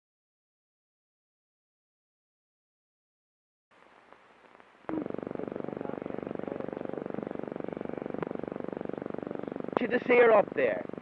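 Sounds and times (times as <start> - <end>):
film soundtrack hiss: 3.7 - 11.0
mechanical whirr: 4.9 - 11.0.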